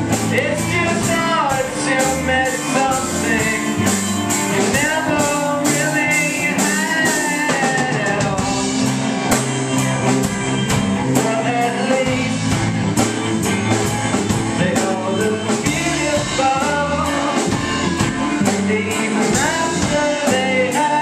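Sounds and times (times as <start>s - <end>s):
drum kit: 0.0s - 21.0s
electric guitar: 0.0s - 21.0s
man singing: 0.1s - 9.1s, 11.0s - 13.1s, 14.3s - 21.0s.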